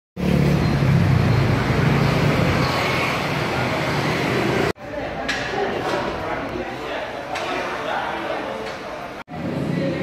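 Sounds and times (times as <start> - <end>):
cars passing: 0.2 - 4.8.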